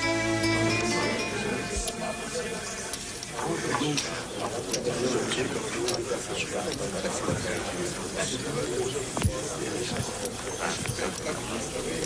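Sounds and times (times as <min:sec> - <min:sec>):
indistinct voices: 0:00.0 - 0:12.0.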